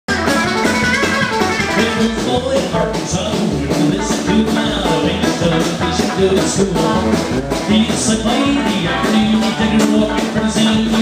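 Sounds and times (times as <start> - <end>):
acoustic guitar strumming: 0.1 - 11.0
drums: 0.1 - 11.0
upright bass: 0.1 - 11.0.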